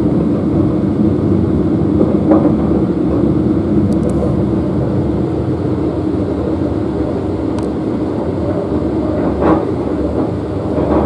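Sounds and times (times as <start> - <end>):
train running rumble: 0.0 - 11.0.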